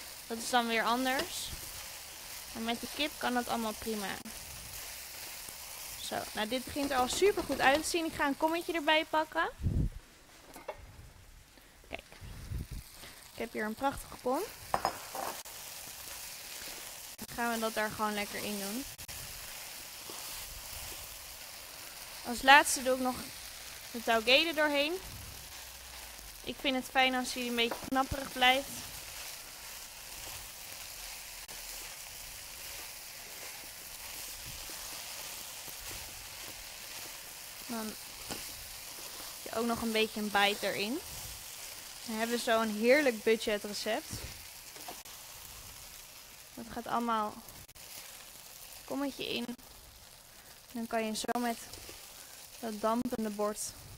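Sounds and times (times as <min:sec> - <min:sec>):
stir-fry sizzling in a wok: 0:00.0 - 0:10.4, 0:11.4 - 0:53.9.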